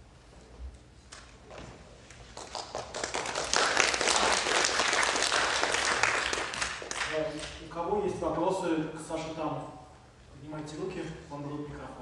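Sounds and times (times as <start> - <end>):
audience applauding: 2.4 - 7.3.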